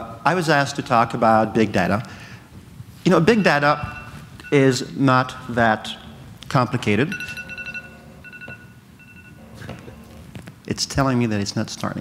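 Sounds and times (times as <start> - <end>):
electronic beeping: 7.1 - 10.1.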